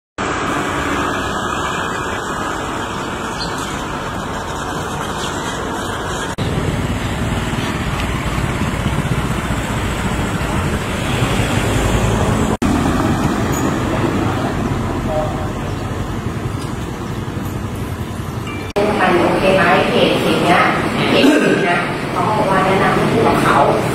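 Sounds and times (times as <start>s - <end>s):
road traffic noise: 0.2s - 23.9s.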